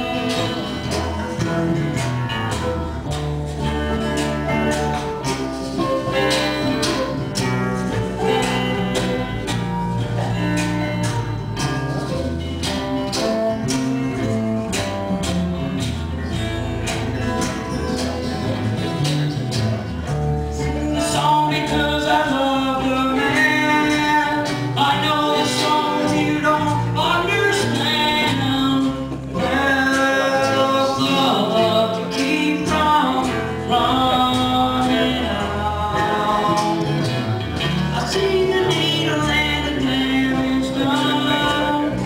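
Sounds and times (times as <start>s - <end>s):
folk-rock band playing: 0.0s - 42.0s.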